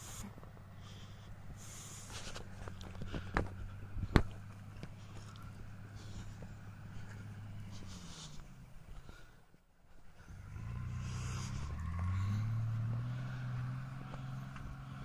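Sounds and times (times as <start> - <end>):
distant vehicle engine running: 0.0 - 15.0.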